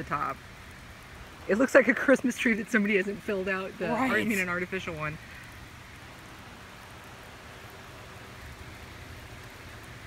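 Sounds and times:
light rain hiss: 0:00.0 - 0:10.0.

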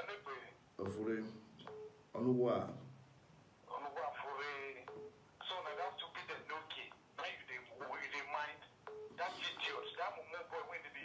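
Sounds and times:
voice through phone speaker: 0:03.7 - 0:11.0.

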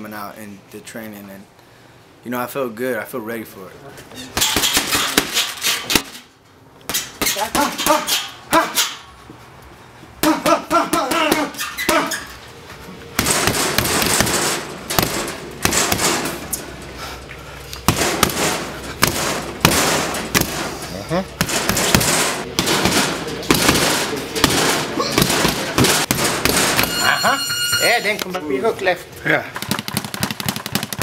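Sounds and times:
boxing gloves hitting punching bags: 0:04.4 - 0:06.2, 0:06.9 - 0:09.0, 0:10.2 - 0:12.3, 0:13.1 - 0:16.6, 0:17.8 - 0:28.1, 0:29.5 - 0:31.0.

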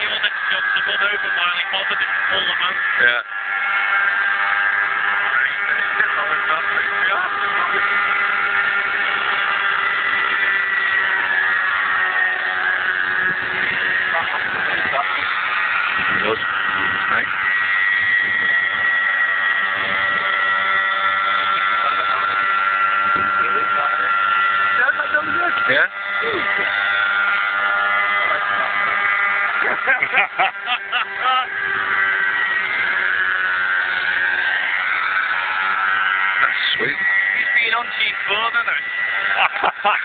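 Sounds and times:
model helicopter rotor whine: 0:00.0 - 0:40.0.

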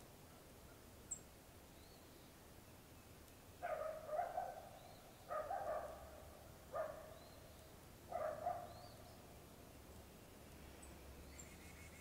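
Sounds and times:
small birds chirping: 0:00.2 - 0:12.0
dog barking faintly: 0:03.6 - 0:07.2, 0:08.1 - 0:08.8.

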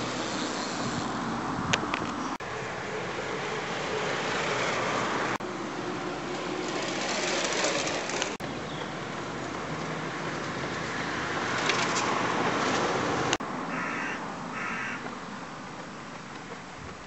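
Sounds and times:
rushing outdoor background noise: 0:00.0 - 0:17.0.

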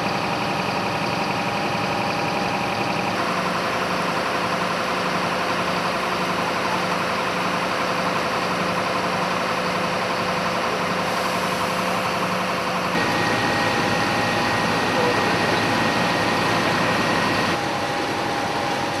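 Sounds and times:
engine idling: 0:00.0 - 0:19.0.

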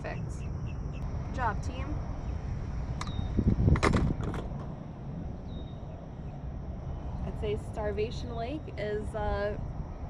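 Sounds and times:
wind rumble on microphone: 0:00.0 - 0:10.0
knocks and thumps of gear: 0:03.7 - 0:04.7.

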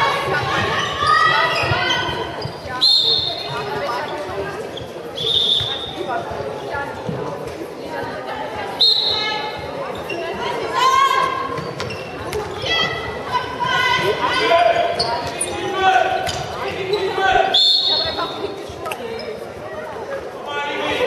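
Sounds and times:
players shouting: 0:12.6 - 0:18.2
ball bouncing on hall floor: 0:16.2 - 0:16.7.

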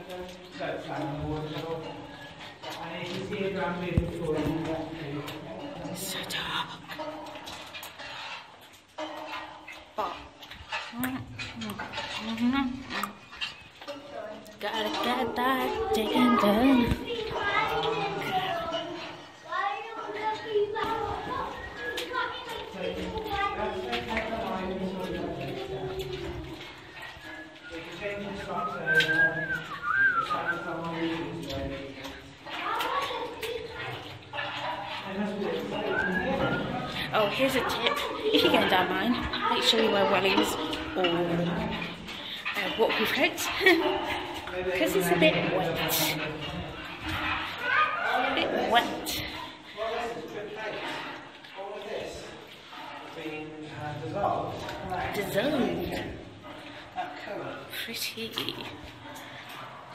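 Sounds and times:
water sounds: 0:00.0 - 0:59.9.

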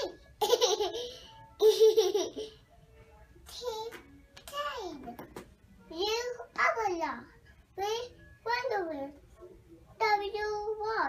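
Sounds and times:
toddler laughing: 0:00.4 - 0:02.6.

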